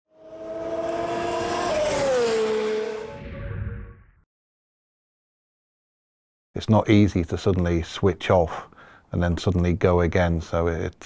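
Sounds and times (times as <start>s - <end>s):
racing car engine passing: 0.1s - 4.0s.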